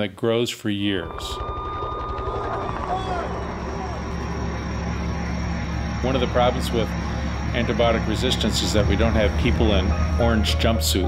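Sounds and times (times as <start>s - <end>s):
low traffic rumble: 0.9s - 11.0s.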